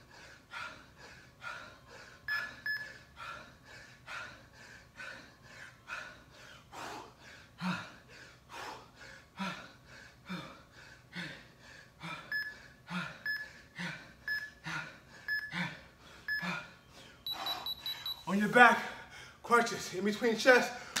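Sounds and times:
man breathing hard: 0:00.0 - 0:18.2, 0:18.8 - 0:19.4
interval timer beeps: 0:02.3 - 0:03.0, 0:12.3 - 0:12.6, 0:13.2 - 0:13.5, 0:14.3 - 0:14.6, 0:15.3 - 0:15.6, 0:16.3 - 0:16.5, 0:17.2 - 0:18.3.

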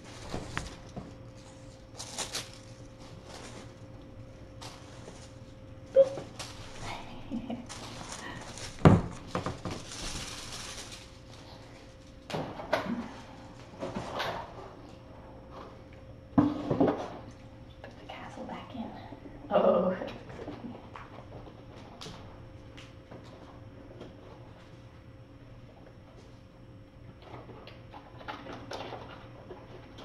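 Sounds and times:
kittens scampering on floor: 0:00.0 - 0:12.2
faint steady hum: 0:00.0 - 0:30.0.

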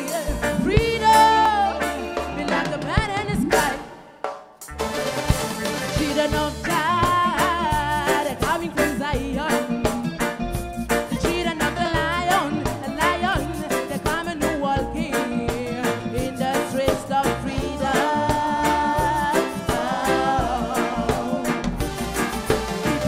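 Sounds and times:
woman singing: 0:00.0 - 0:04.1, 0:06.0 - 0:10.2, 0:11.0 - 0:21.8
live reggae band playing: 0:00.0 - 0:23.0.

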